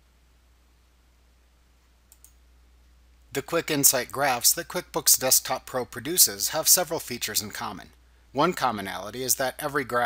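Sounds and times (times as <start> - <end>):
computer mouse clicks: 2.1 - 2.4.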